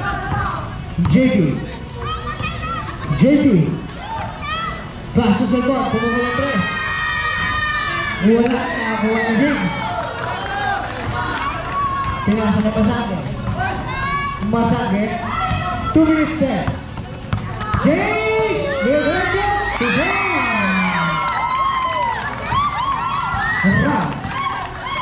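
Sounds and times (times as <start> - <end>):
crowd shouting and cheering: 0.0 - 25.0.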